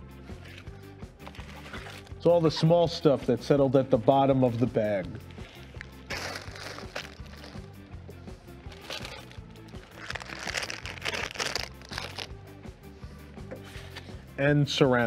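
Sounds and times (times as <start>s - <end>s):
quiet background music: 0.0s - 15.0s
plastic bag crinkling: 5.2s - 7.7s, 8.7s - 12.3s.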